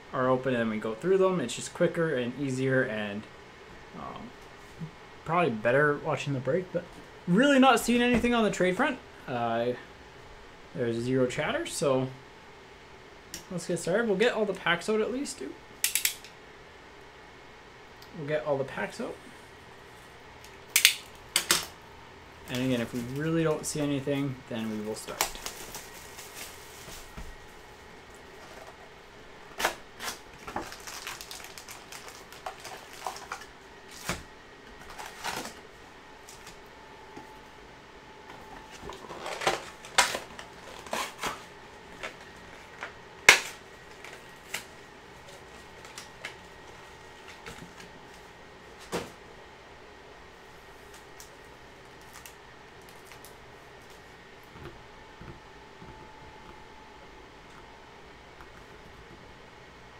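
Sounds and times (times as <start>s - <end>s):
foil packs crinkling: 22.5s - 27.5s, 29.5s - 36.6s, 38.6s - 48.3s, 50.8s - 54.1s.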